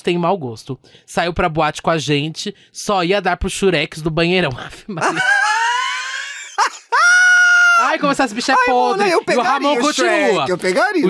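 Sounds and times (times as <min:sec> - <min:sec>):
man shrieking with laughter: 0:05.0 - 0:09.3.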